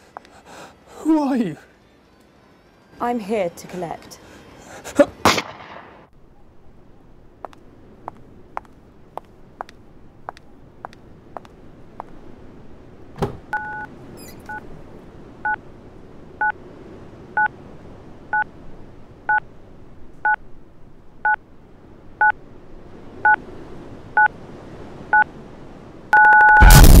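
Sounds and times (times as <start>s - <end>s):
telephone keypad two-tone beeps: 13.6s - 13.9s, 26.2s - 26.7s.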